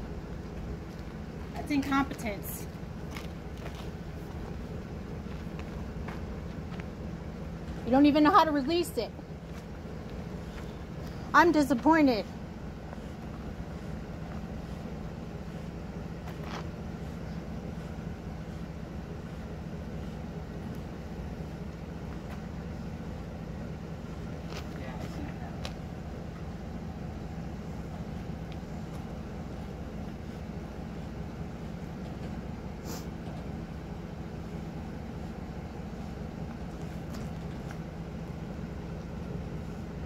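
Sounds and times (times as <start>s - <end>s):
vehicle engine idling: 0.0s - 40.0s.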